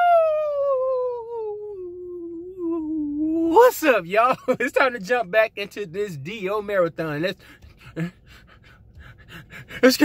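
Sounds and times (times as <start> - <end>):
man's breathy puffs: 7.4 - 9.9.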